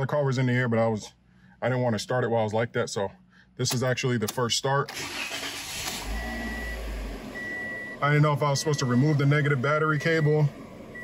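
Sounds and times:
engine rumbling: 0:03.1 - 0:11.0
starter motor whirring: 0:04.9 - 0:07.6.

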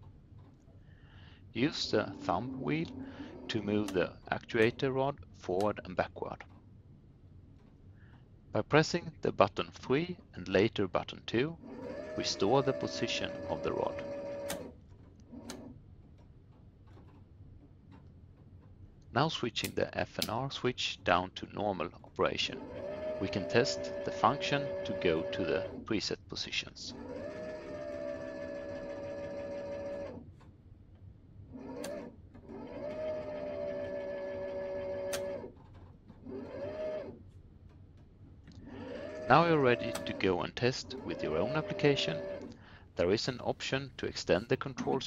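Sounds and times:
electric actuator whine: 0:01.5 - 0:05.8, 0:11.6 - 0:15.8, 0:22.2 - 0:26.0, 0:26.7 - 0:30.3, 0:31.4 - 0:37.2, 0:38.5 - 0:45.0
sharp clicks: 0:19.6 - 0:20.4.

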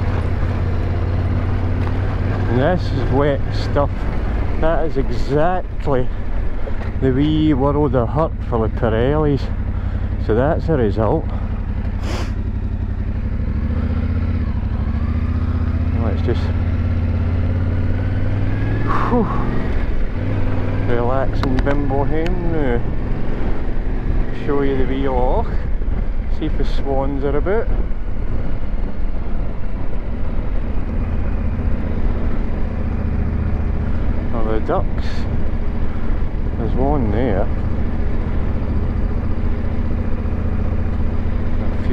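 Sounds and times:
motorcycle engine running: 0:00.0 - 0:41.9.

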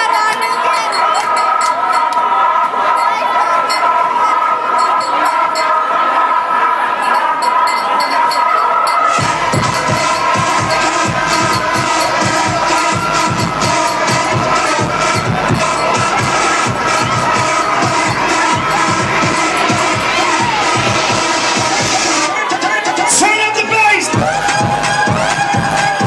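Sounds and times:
crowd cheering: 0:00.0 - 0:26.0
loud dance music: 0:00.0 - 0:26.0.

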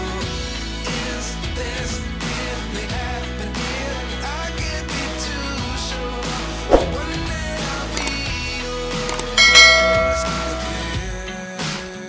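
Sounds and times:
background pop music: 0:00.0 - 0:12.0
small clicks: 0:08.0 - 0:08.2, 0:09.1 - 0:09.4
bell-like notification chime: 0:09.1 - 0:11.1.

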